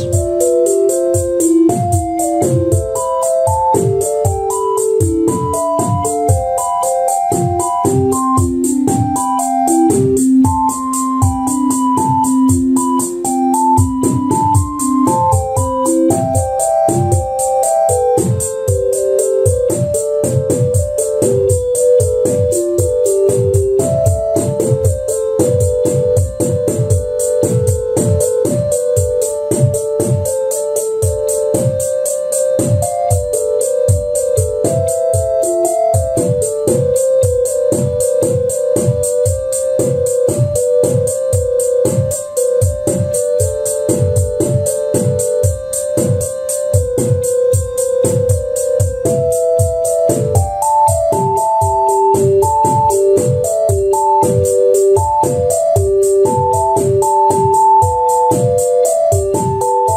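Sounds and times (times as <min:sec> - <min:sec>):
kick and snare drums: 0:00.0 - 0:32.0, 0:32.6 - 0:59.9
rapid high ticking: 0:00.0 - 0:59.9
synth melody: 0:00.0 - 0:59.9.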